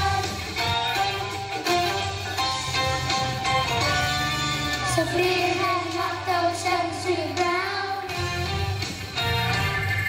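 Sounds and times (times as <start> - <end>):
children's choir singing: 0.0 - 0.5, 4.8 - 8.2
instrumental backing music: 0.0 - 10.0.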